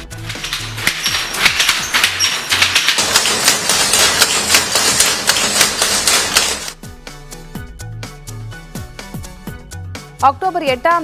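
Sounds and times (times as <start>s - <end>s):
weaving loom clattering: 0.0s - 6.8s.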